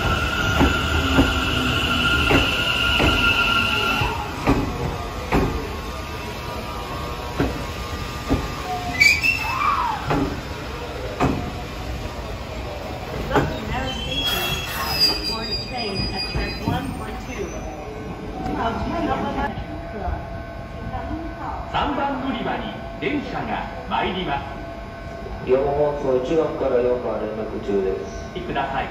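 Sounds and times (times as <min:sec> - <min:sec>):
train wheels clacking over rail joints: 0:04.4 - 0:05.7
high thin wheel squeal: 0:08.9 - 0:09.8, 0:13.7 - 0:17.7.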